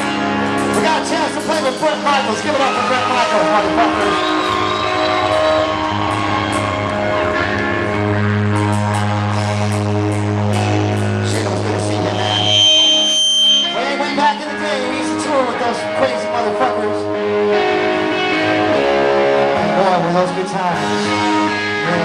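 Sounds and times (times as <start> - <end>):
live hard rock band: 0.0 - 22.0
high-pitched ringing tone: 12.0 - 14.2.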